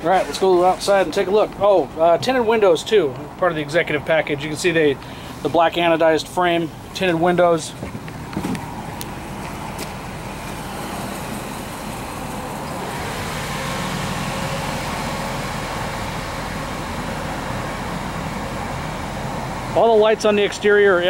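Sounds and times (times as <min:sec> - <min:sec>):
vehicle engine idling: 0:00.0 - 0:21.0.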